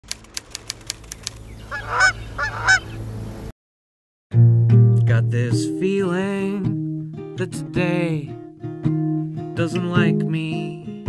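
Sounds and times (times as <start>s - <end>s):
quick clicks: 0.0s - 1.5s
goose honking: 1.6s - 3.0s.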